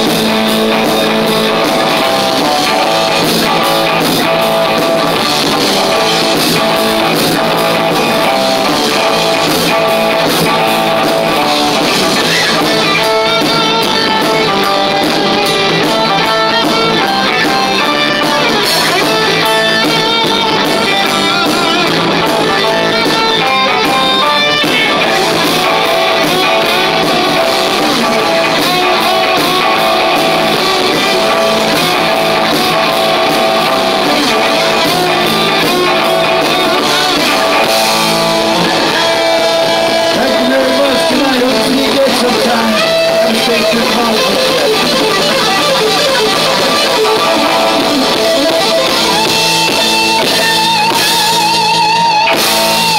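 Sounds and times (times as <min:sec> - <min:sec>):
distorted electric guitars: 0:00.0 - 0:52.9
drums: 0:00.0 - 0:52.9
man singing: 0:38.6 - 0:45.4.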